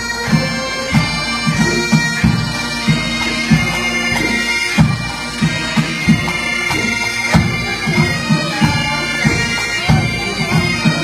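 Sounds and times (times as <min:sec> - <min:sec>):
bagpipes playing: 0:00.0 - 0:11.0.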